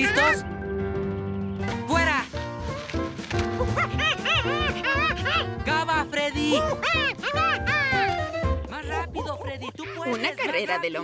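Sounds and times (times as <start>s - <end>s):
cartoon background music: 0.0s - 11.0s.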